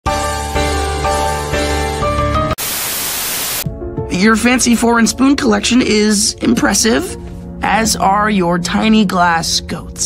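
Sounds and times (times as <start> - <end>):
music: 0.1 - 2.6, 3.6 - 10.0
loud static hiss: 2.6 - 3.6.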